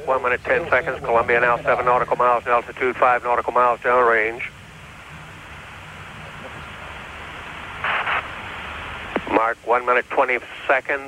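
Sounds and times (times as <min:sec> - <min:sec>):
radio line hiss: 0:00.0 - 0:11.0
burst of static: 0:00.1 - 0:11.0.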